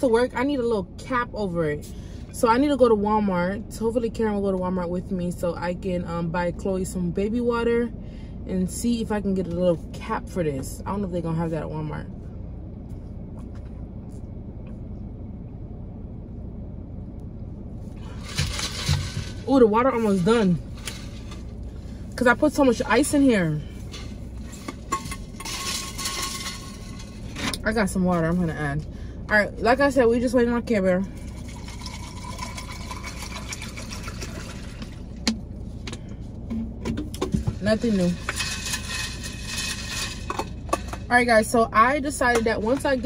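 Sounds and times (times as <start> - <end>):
car interior rumble: 0.0 - 43.0
water pouring over ice: 31.2 - 35.1.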